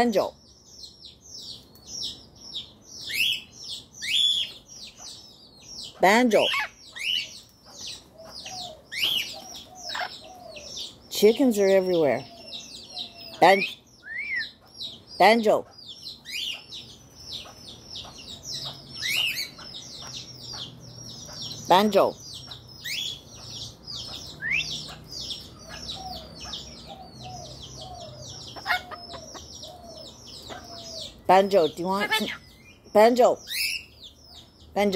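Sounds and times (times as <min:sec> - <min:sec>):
birds chirping: 0:00.0 - 0:34.9
soft low bird calls: 0:00.0 - 0:34.9
chickens clucking: 0:14.5 - 0:32.4.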